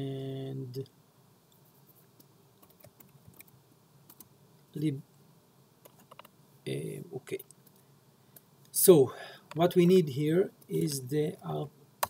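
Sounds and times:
faint keyboard typing: 1.5s - 4.3s, 5.8s - 6.3s.

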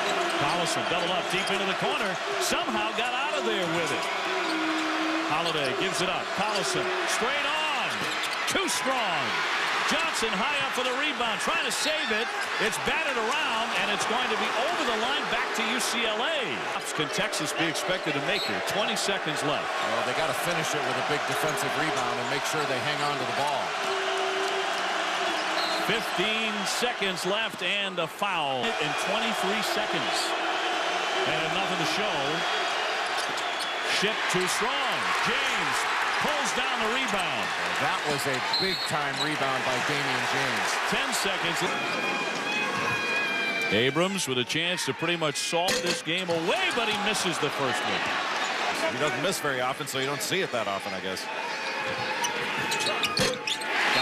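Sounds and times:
arena crowd noise: 0.0s - 54.0s.

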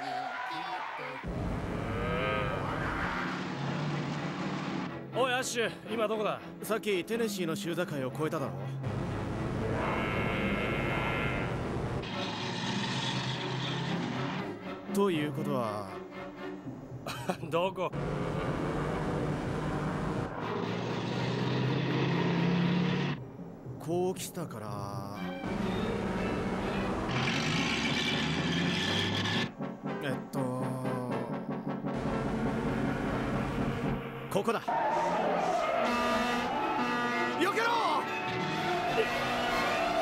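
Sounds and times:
approaching truck low drone: 8.8s - 14.9s, 18.0s - 23.8s, 25.4s - 30.0s
car tyres squealing: 9.7s - 14.6s, 20.1s - 23.2s, 25.4s - 29.5s, 34.7s - 40.0s.

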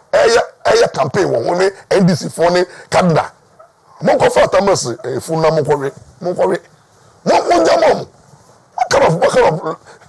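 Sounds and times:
man shouting: 0.1s - 0.9s, 7.3s - 8.1s, 8.8s - 9.8s.

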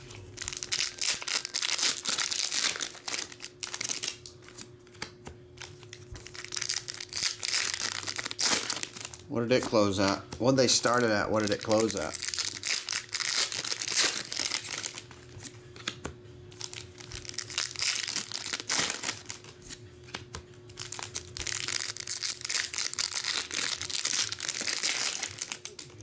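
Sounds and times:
foil wrappers crinkling: 0.0s - 26.0s.

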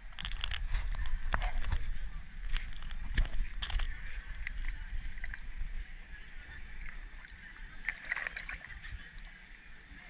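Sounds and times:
water lapping and splashing: 0.0s - 10.0s
small crackling splashes: 7.2s - 9.0s.

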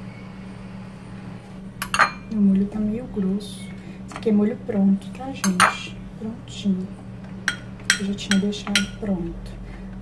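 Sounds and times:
steady low hum: 0.0s - 10.0s
utensil clinking against dishware: 1.8s - 2.3s, 7.5s - 9.1s.

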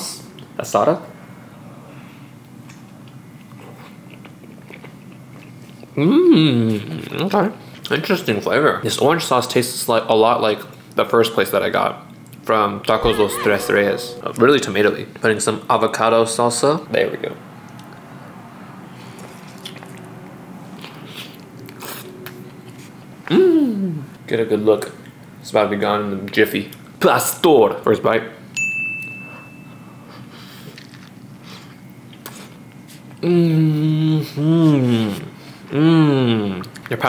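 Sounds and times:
person chewing food: 2.7s - 6.0s, 19.2s - 20.1s.

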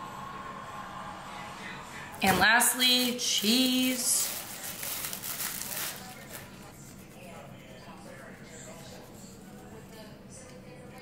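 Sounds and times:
plastic bag crinkling: 2.2s - 7.0s.

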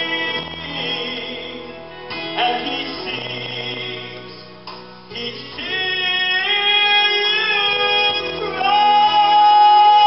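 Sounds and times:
men's group singing gospel: 0.0s - 10.0s.

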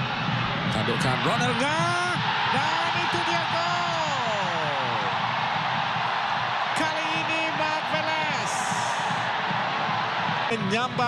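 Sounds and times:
stadium crowd cheering: 0.0s - 11.0s
commentator's voice: 0.6s - 5.2s, 6.7s - 9.3s, 10.5s - 11.0s.

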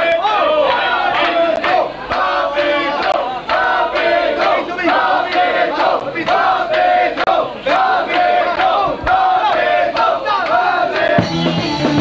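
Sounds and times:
crowd chanting: 0.0s - 12.0s.

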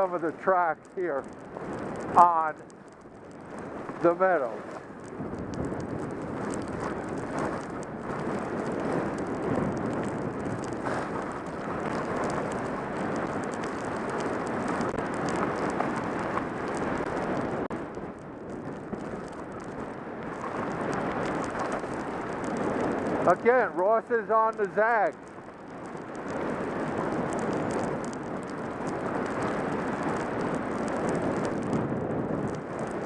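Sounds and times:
skis carving over snow: 0.0s - 33.0s
wind on microphone: 0.0s - 33.0s.

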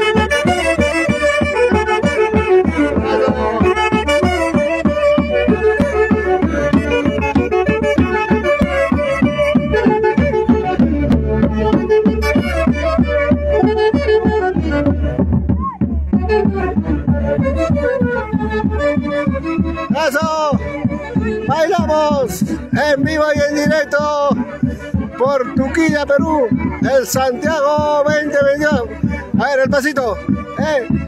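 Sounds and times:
large bass drum beat: 0.0s - 31.0s.

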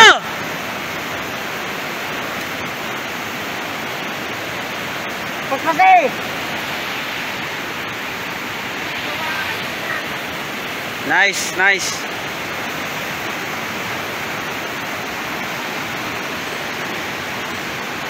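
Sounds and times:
floodwater rushing: 0.0s - 18.0s.

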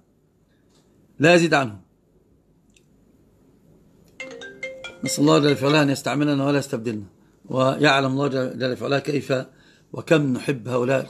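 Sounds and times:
electronic ringtone melody: 4.2s - 6.1s.

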